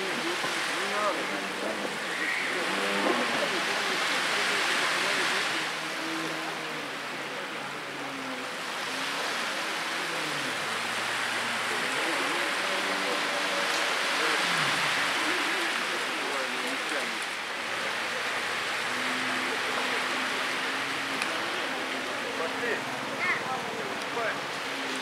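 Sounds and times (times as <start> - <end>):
wind and water spray hiss: 0.0 - 5.9
distant jet ski engine: 0.0 - 25.0.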